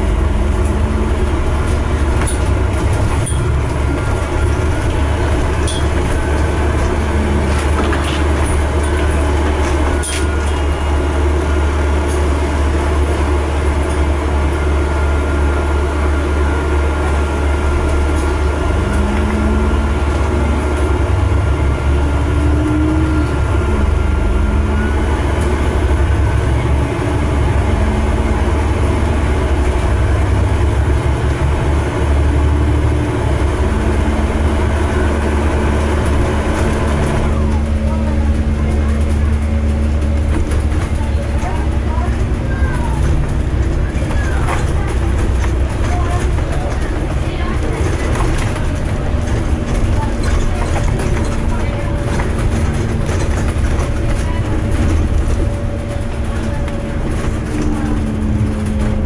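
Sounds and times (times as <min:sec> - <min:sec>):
bus engine drone: 0:00.0 - 0:59.0
road rumble: 0:00.0 - 0:59.0.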